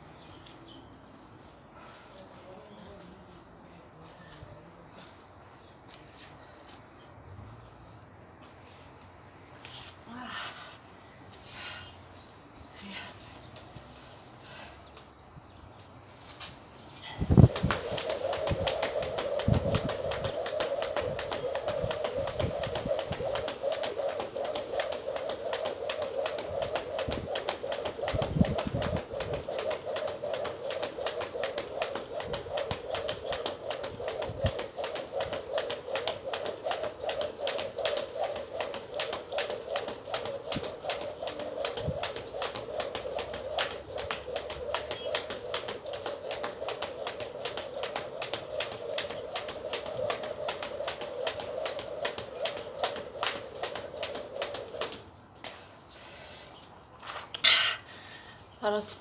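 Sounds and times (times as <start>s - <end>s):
skipping rope slapping the ground: 17.2s - 55.6s
steady hum: 17.3s - 54.9s.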